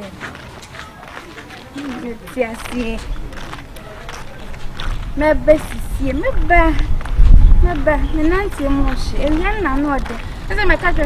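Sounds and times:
footsteps on gravel road: 0:00.0 - 0:11.0.

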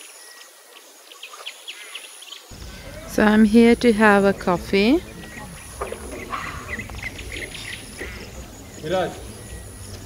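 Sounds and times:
small birds chirping: 0:00.0 - 0:10.0
faint voices: 0:02.5 - 0:10.0.

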